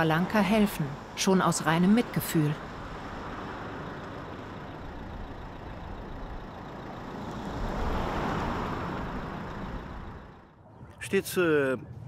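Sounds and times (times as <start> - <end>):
car driving past: 2.6 - 10.6.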